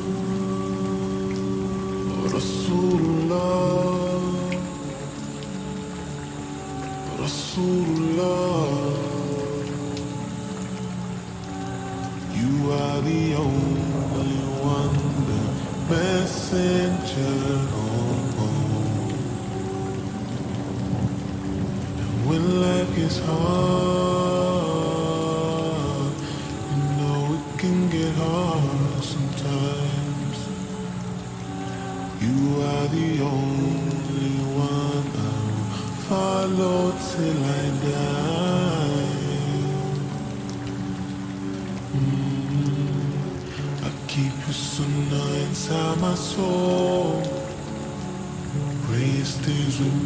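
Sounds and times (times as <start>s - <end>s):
male vocal harmonies with reverb: 0.0s - 6.0s, 6.6s - 19.9s, 21.9s - 50.0s
light hiss: 0.0s - 50.0s
steady rain: 0.0s - 50.0s.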